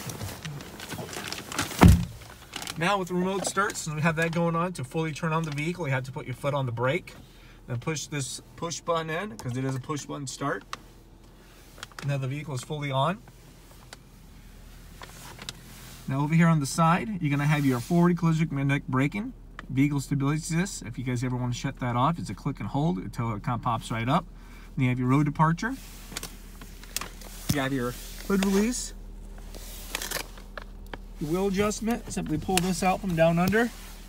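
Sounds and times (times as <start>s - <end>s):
clothing rustling against car seat: 0.0s - 4.5s, 9.5s - 18.4s, 25.6s - 34.0s
heavy low thump: 1.8s - 2.2s.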